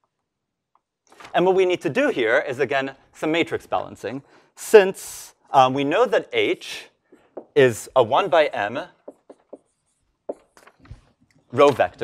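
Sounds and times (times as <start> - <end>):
chalk tapping and scratching: 9.0 - 10.8.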